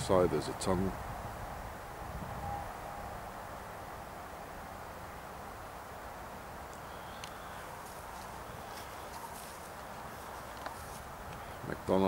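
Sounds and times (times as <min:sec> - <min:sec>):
distant motorway traffic rumble: 0:00.0 - 0:12.0.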